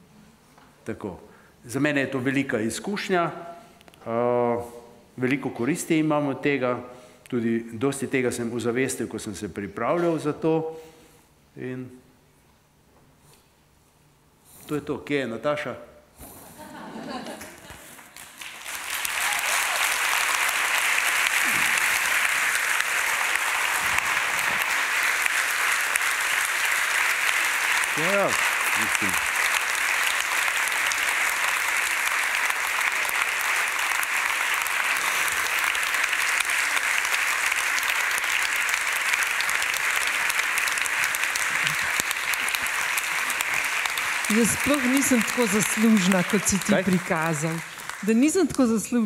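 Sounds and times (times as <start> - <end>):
large audience applauding: 17.5 - 48.7.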